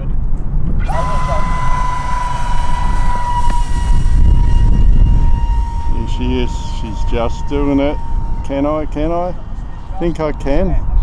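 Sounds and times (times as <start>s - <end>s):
wind rumble on microphone: 0.0s - 11.0s
electric motor whining: 0.8s - 10.8s.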